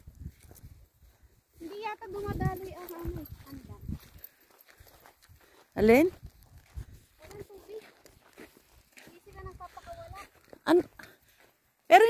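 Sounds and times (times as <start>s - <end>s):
faint footsteps on gravel: 0.0s - 12.0s.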